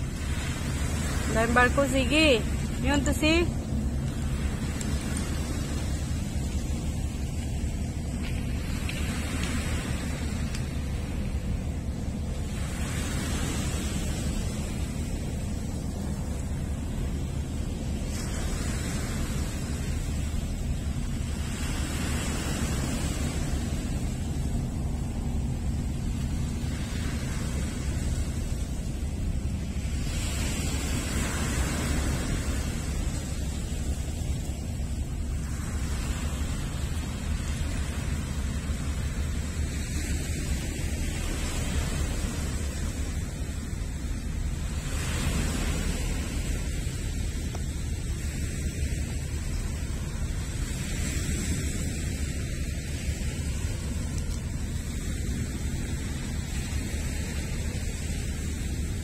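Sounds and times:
waves washing onto pebbles: 0.0 - 59.0
wind rumble on microphone: 0.0 - 59.0.

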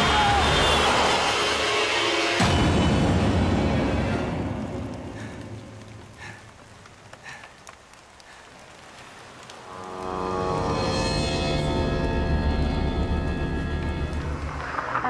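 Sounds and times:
dramatic orchestral score: 0.0 - 6.0, 9.6 - 15.0.

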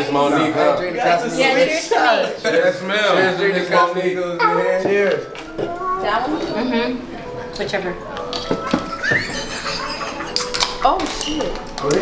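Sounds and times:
voices of small group: 0.0 - 12.0.

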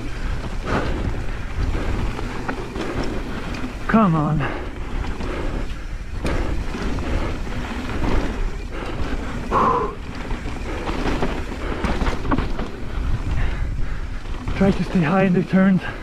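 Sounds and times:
bike clattering and rattling: 0.0 - 16.0
tyre and wind noise: 0.0 - 16.0.

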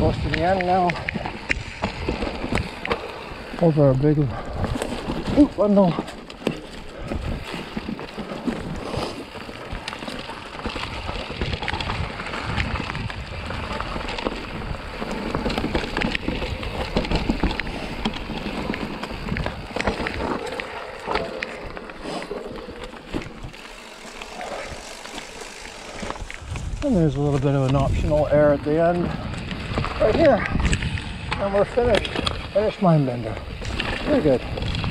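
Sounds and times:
bike clicks and rattles: 0.0 - 34.9
bike tyre noise on dirt: 0.0 - 34.9.

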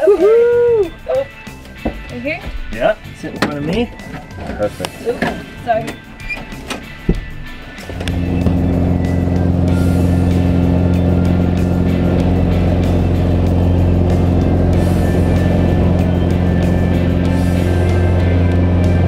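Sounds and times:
propeller plane engine at full power: 7.8 - 19.0.

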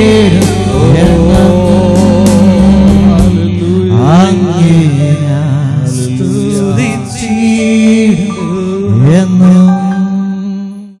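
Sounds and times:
keyboard accompaniment: 0.0 - 11.0.

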